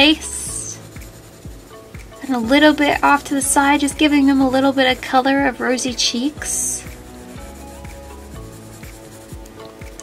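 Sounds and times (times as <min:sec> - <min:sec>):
background music with steady beat: 0:00.0 - 0:10.0
pencil shading on paper: 0:00.0 - 0:10.0.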